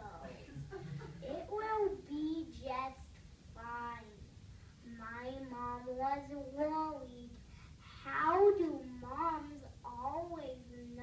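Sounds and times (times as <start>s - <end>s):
boy speaking into microphone: 1.2s - 11.0s.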